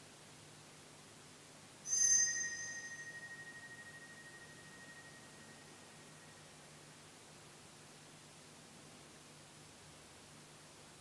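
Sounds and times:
small bell ringing: 0:01.9 - 0:06.5.

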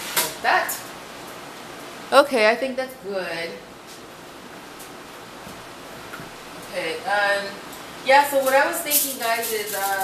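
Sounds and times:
fan running hiss: 0:00.0 - 0:10.0.

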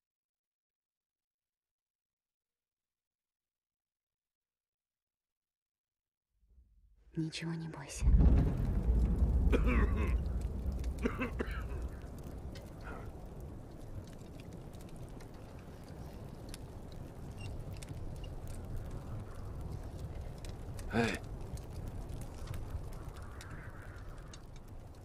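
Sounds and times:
low wind noise: 0:07.1 - 0:25.0
deep low rumble: 0:07.8 - 0:25.0
campfire crackling: 0:07.9 - 0:25.0.

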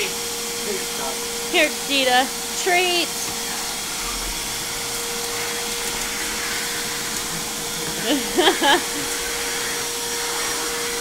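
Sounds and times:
shop vac motor whine: 0:00.0 - 0:11.0.

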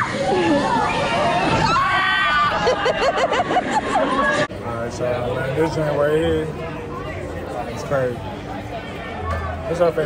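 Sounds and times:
excited overlapping voices: 0:00.0 - 0:10.0.

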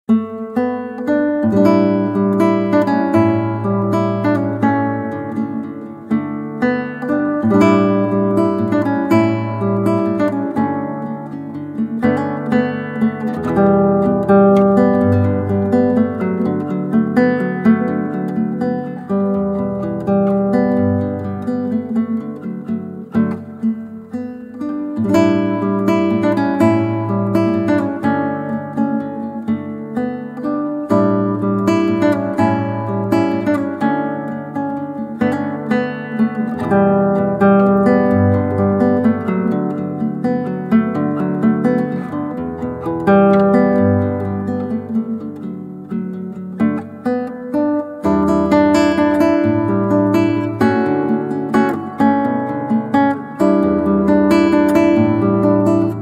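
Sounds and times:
acoustic guitar instrumental: 0:00.0 - 0:56.0.

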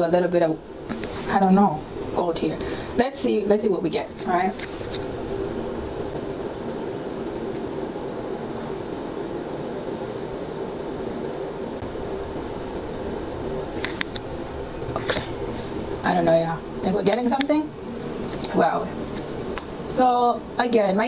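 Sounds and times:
low mechanical hum: 0:00.0 - 0:21.0.

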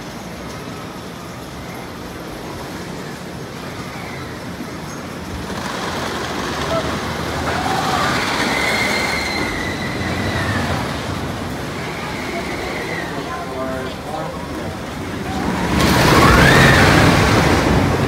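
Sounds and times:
roller coaster rumbling on wooden track: 0:00.0 - 0:18.0
high wheel squeal: 0:06.6 - 0:13.7.

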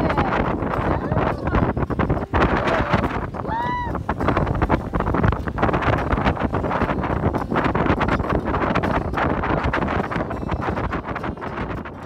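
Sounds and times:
water rushing along hull: 0:00.0 - 0:12.0
wind buffeting microphone: 0:00.0 - 0:12.0.

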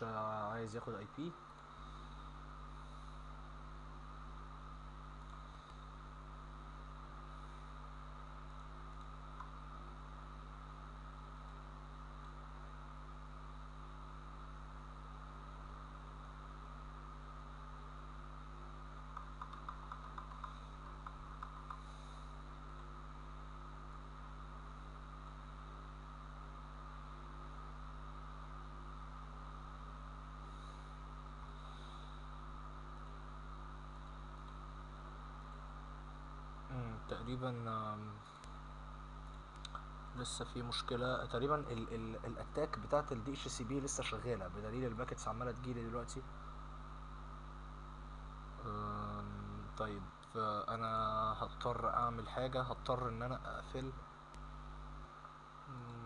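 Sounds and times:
electrical hum with hiss: 0:00.0 - 0:56.0
faint clicks: 0:19.1 - 0:21.9, 0:39.2 - 0:39.9.

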